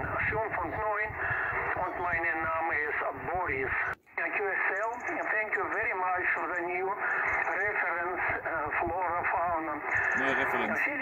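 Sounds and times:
person talking over radio: 0:00.0 - 0:11.0.

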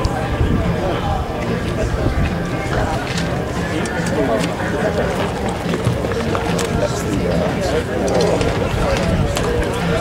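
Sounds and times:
background music: 0:00.0 - 0:10.0
indistinct voices: 0:00.0 - 0:10.0.

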